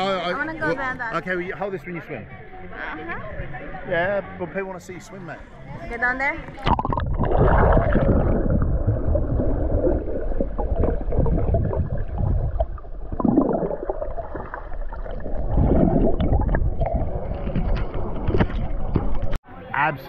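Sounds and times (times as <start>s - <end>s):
water sloshing and gurgling: 6.4s - 19.4s.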